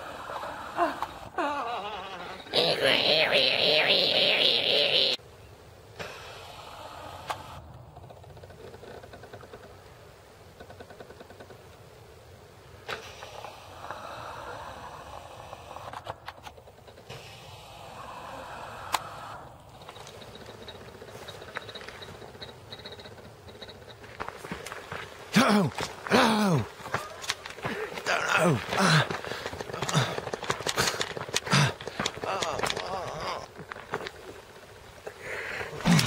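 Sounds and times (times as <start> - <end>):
footsteps on gravel: 24.0 - 34.5.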